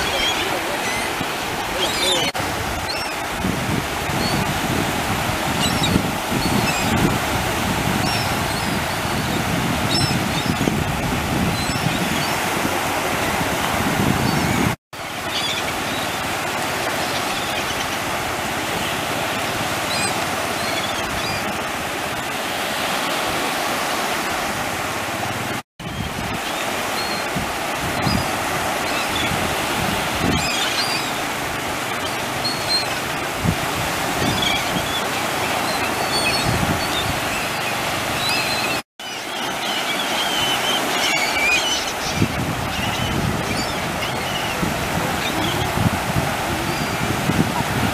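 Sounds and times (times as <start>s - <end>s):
gulls calling: 0.0s - 24.8s, 25.8s - 47.9s
ocean surf breaking: 0.0s - 47.9s.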